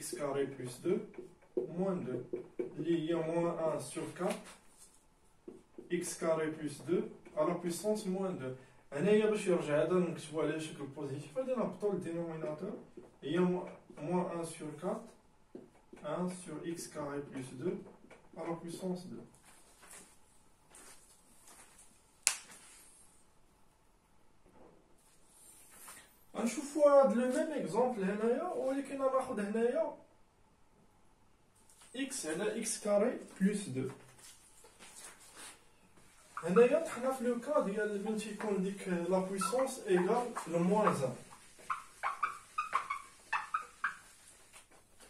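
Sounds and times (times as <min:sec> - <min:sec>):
whiteboard eraser squeaking: 0:36.1 - 0:44.9.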